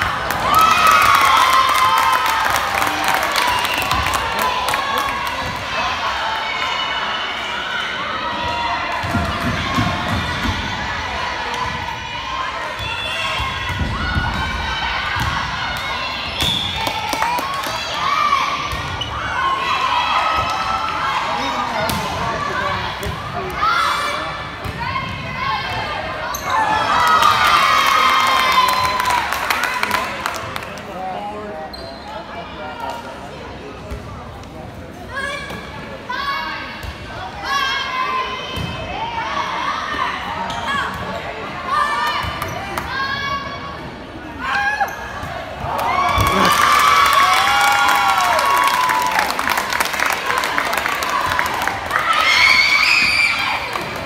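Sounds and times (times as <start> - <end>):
crowd cheering: 0.0 - 18.6, 26.6 - 30.8, 45.5 - 54.0.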